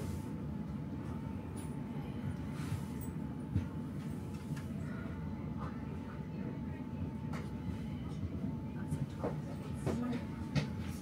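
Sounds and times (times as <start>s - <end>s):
low hum of train equipment: 0.0s - 11.0s.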